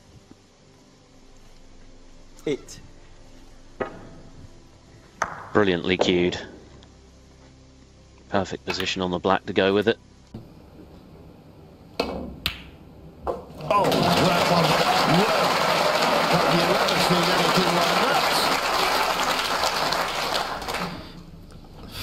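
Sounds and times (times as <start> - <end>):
audience applauding: 13.5 - 21.2
people cheering: 13.6 - 21.2.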